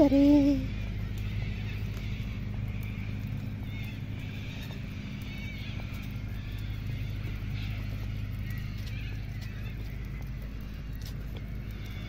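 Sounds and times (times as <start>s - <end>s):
steady low hum: 0.0s - 12.0s
footstep clicks: 0.8s - 12.0s.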